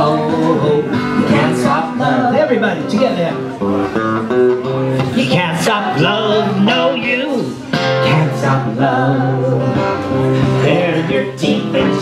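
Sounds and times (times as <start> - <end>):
people singing: 0.0 - 3.0, 5.0 - 12.0
acoustic guitar strumming: 0.0 - 12.0.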